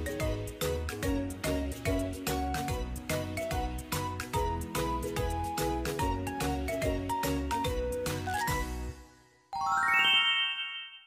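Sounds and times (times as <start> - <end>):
rising bell-like chime: 9.6 - 11.0.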